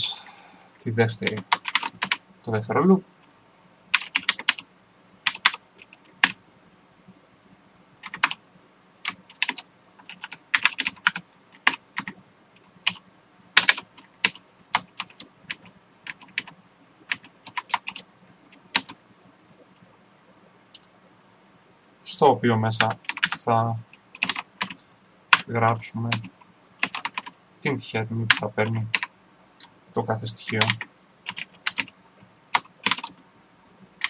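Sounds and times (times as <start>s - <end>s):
typing on computer keyboard: 1.2s - 2.2s, 3.9s - 4.6s, 5.3s - 6.4s, 8.0s - 8.4s, 9.0s - 12.2s, 12.8s - 13.0s, 13.6s - 19.0s, 22.8s - 23.4s, 24.2s - 25.5s, 26.1s - 27.4s, 28.3s - 29.7s, 30.5s - 33.2s.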